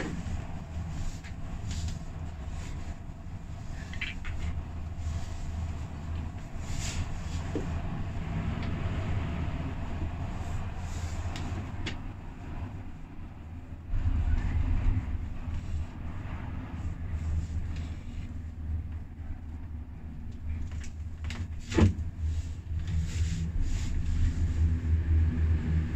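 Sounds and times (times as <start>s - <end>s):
gondola cabin rumble: 0.0s - 25.9s.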